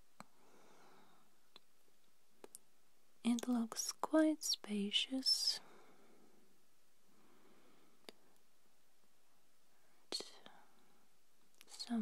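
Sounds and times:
whispered breath or mouth click: 8.0s - 8.4s
whispered speech: 11.6s - 12.0s.

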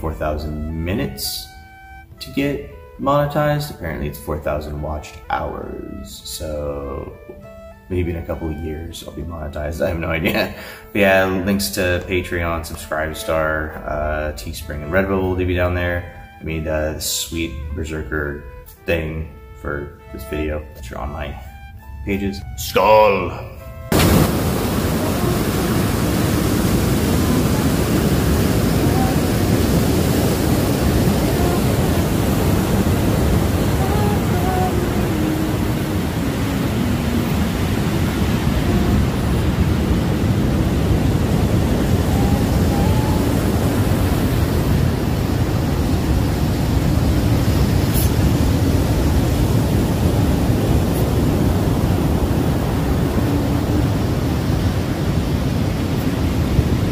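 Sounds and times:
ocean surf: 23.8s - 56.9s
woman singing: 24.8s - 30.1s, 30.8s - 37.8s, 41.9s - 44.0s.

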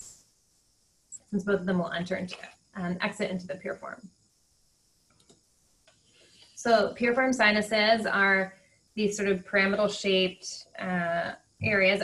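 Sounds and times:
faint clicks: 5.1s - 6.6s.

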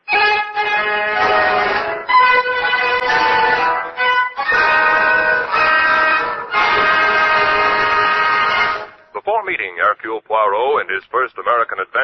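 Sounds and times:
orchestra holding long chord: 0.1s - 9.0s.

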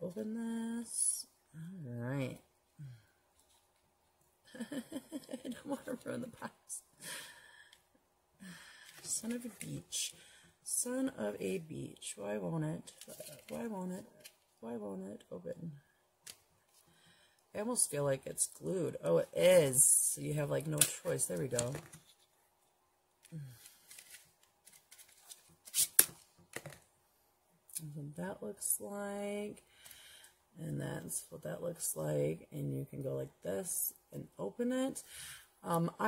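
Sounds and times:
woman sighing: 23.3s - 23.8s.

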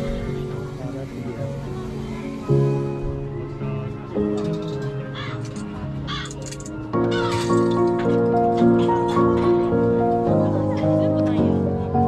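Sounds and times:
background music with sustained notes: 0.0s - 12.0s
crows cawing: 5.1s - 6.5s, 7.1s - 7.6s.

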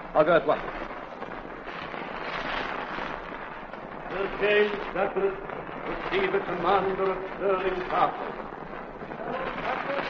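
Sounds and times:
crackling record surface hiss: 0.0s - 10.0s.

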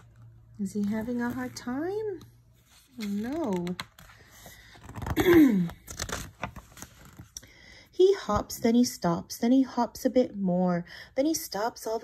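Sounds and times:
book pages rustling: 0.0s - 7.4s.

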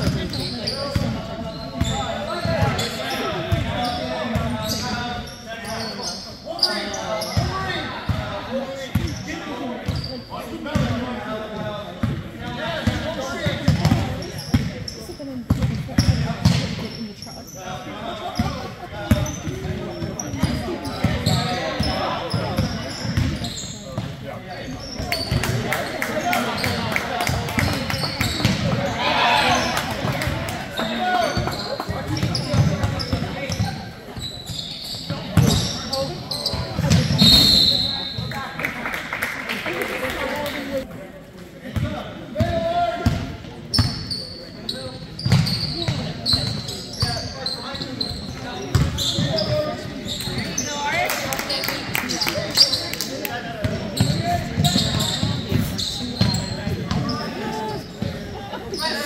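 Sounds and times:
people talking and calling out: 0.0s - 59.0s.

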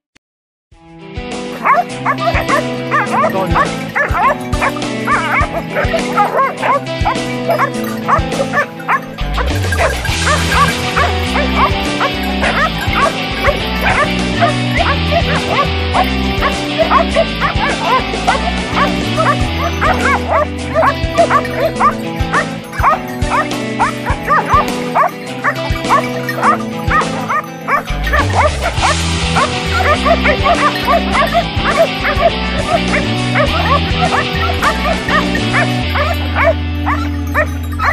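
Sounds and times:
background music: 0.8s - 37.9s
hounds barking and yelping: 1.4s - 37.9s.

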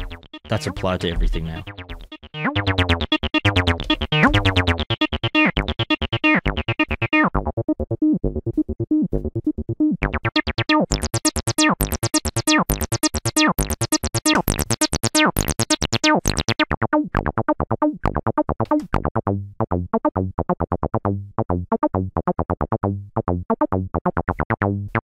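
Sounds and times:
synthesizer acid bass line: 0.0s - 9.0s, 10.0s - 17.4s.

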